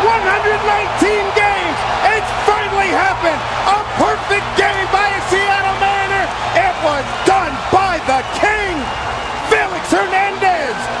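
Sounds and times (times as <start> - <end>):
crowd cheering: 0.0 - 11.0.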